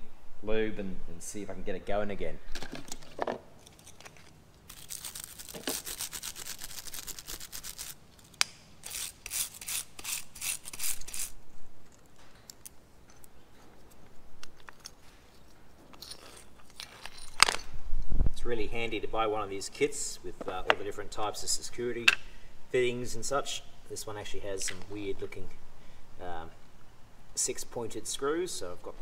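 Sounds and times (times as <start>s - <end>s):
parts clicking: 2.6s - 17.7s
wire brush scratching metal: 4.7s - 11.4s.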